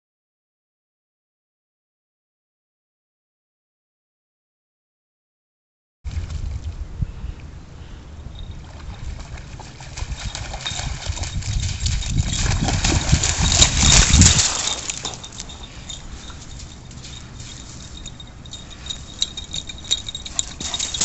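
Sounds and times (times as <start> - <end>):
dog splashing through water: 8.6 - 21.0.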